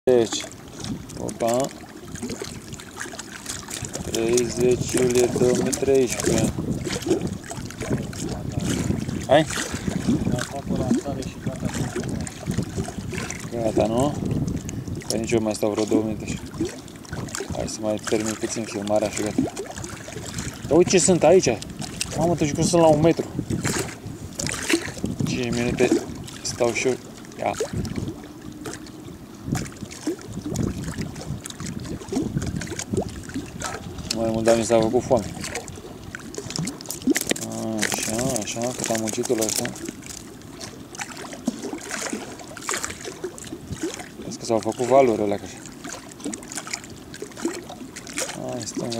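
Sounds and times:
water lapping around boat: 0.0 - 48.9
wind buffeting microphone: 0.1 - 48.9
man speaking: 4.2 - 6.5.

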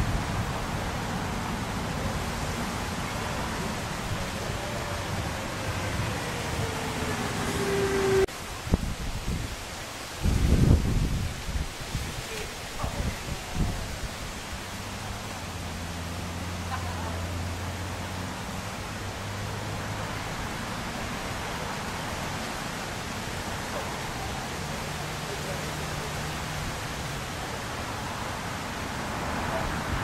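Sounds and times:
water rushing on a river: 0.0 - 30.0
wind: 0.0 - 30.0.

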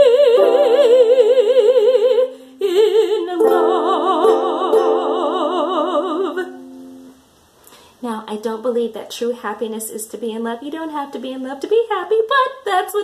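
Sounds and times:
woman singing operatically: 0.0 - 6.7, 8.1 - 13.0
accompaniment notes: 2.6 - 7.2.

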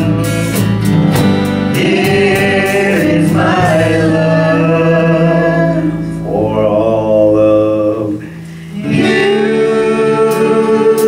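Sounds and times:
people singing: 0.0 - 0.8, 1.6 - 11.0
acoustic guitars strummed: 0.0 - 11.0.

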